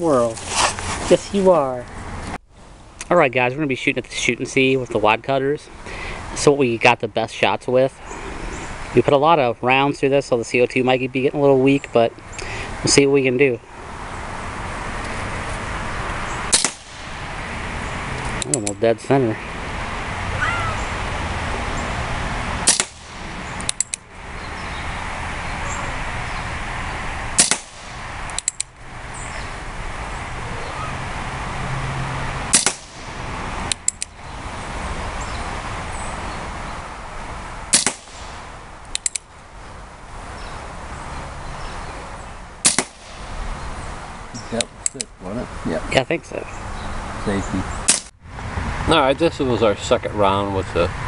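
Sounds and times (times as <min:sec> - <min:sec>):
air revolver shots: 0:16.5 - 0:17.3, 0:22.6 - 0:23.9, 0:27.4 - 0:28.6, 0:32.5 - 0:33.2, 0:37.7 - 0:38.5, 0:42.6 - 0:43.4.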